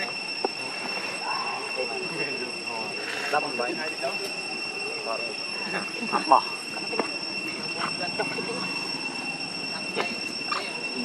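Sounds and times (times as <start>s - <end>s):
high-pitched two-tone whine: 0.0s - 11.0s.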